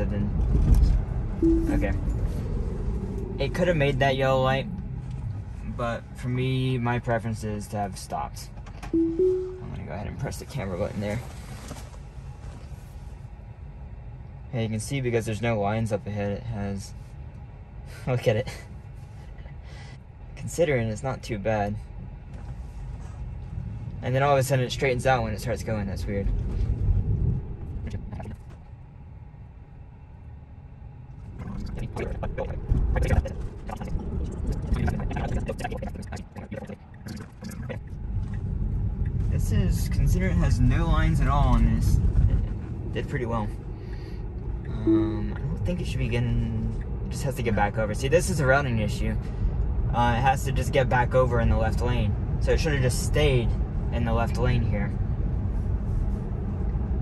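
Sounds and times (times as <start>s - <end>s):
road and tyre noise in car: 0.0s - 57.0s
tyre and road noise in car: 36.8s - 44.7s.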